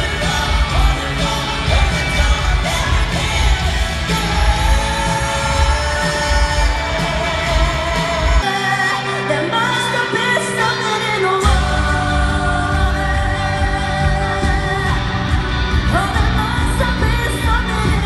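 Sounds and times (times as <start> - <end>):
bass and drum band: 0.0 - 9.1, 11.4 - 18.0
person singing: 0.0 - 18.0.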